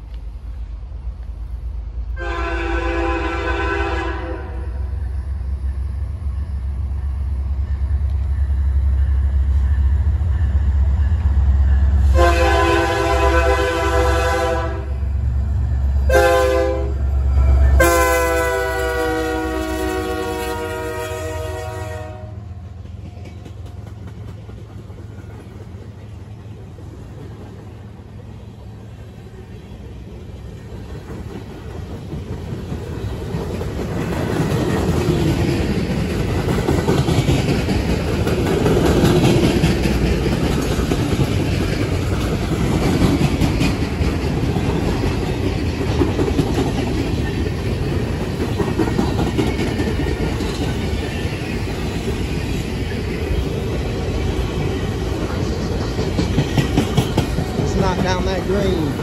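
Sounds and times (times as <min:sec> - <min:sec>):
locomotive engine rumble: 0:00.0 - 0:59.0
locomotive air horn: 0:02.2 - 0:04.8, 0:12.0 - 0:15.0, 0:16.1 - 0:22.4
train wheels clattering over rail joints: 0:22.7 - 0:28.3, 0:30.6 - 0:59.0.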